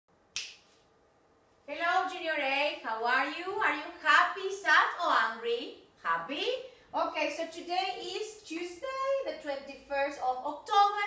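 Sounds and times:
sharp bright snap: 0:00.3 - 0:00.8
woman's voice: 0:01.7 - 0:11.0.

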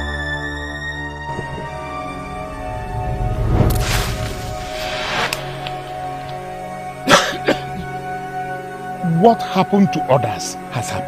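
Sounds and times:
background music with held tones: 0:05.6 - 0:11.0
man coughing: 0:07.1 - 0:07.8.

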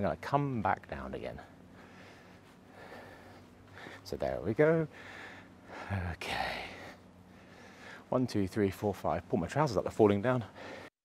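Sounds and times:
low steady hiss: 0:00.0 - 0:10.9
man breathing: 0:01.5 - 0:04.2, 0:04.9 - 0:08.1, 0:10.4 - 0:10.9.

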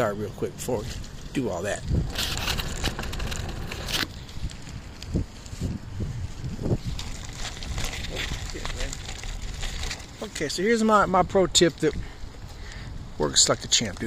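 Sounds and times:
wind rumble on microphone: 0:00.0 - 0:14.0.

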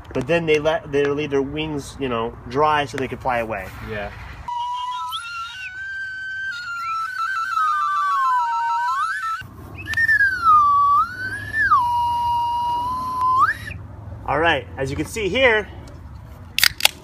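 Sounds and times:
tin whistle and slide whistle: 0:04.5 - 0:13.8.

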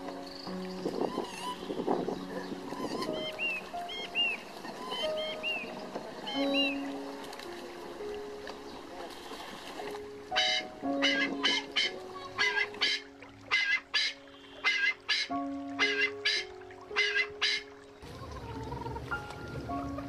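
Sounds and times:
music with slow sustained chords: 0:00.0 - 0:20.0.

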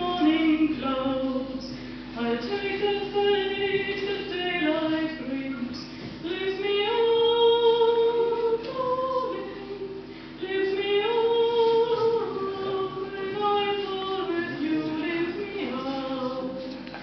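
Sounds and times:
woman singing classical: 0:00.0 - 0:16.8
singer breath: 0:01.7 - 0:02.2, 0:10.0 - 0:10.4.

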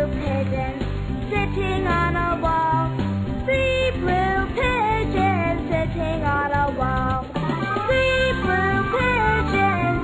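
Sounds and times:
children's song singing: 0:00.0 - 0:10.0
instrumental backing: 0:00.0 - 0:10.0.

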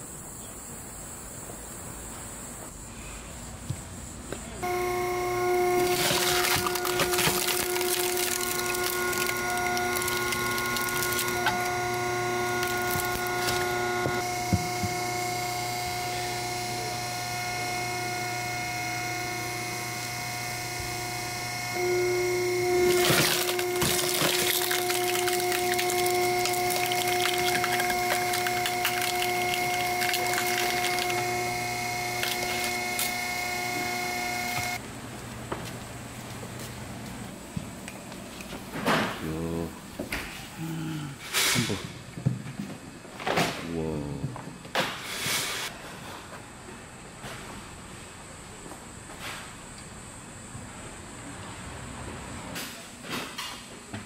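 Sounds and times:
log splitter motor whine: 0:04.6 - 0:37.7
wood cracking and splintering: 0:05.4 - 0:15.0, 0:22.7 - 0:33.3.

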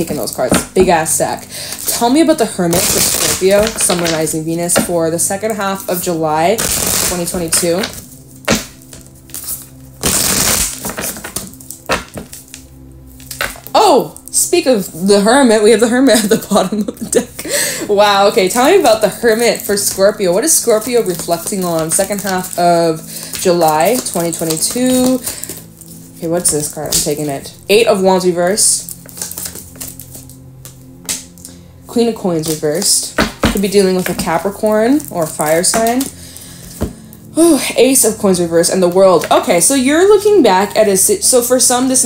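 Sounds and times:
soft background music: 0:00.0 - 0:42.0
cards shuffling: 0:01.6 - 0:05.0, 0:06.6 - 0:12.6, 0:18.4 - 0:27.2, 0:28.9 - 0:31.5
card taps and snaps: 0:07.5 - 0:09.0, 0:10.2 - 0:12.6.

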